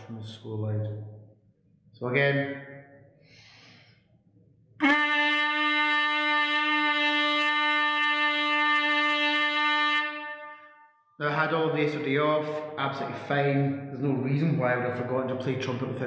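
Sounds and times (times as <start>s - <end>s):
trumpet playing long note: 4.8s - 10.9s.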